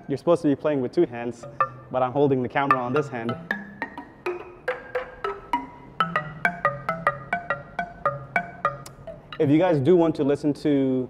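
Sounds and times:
balafon single notes: 0:01.3 - 0:09.7.

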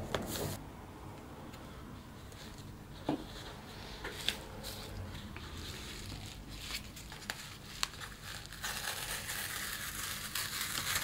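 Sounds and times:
paper rustling: 0:02.3 - 0:11.0.

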